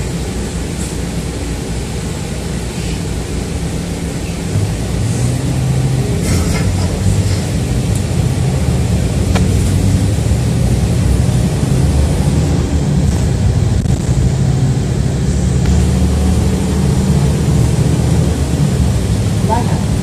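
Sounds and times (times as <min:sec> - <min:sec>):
bus engine and road drone: 0:00.0 - 0:20.0.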